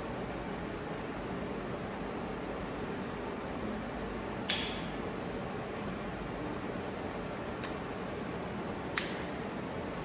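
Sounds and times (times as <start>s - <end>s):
fan-like background hiss: 0.0s - 10.0s
sharp click of metal insert: 4.5s - 4.9s, 9.0s - 9.3s.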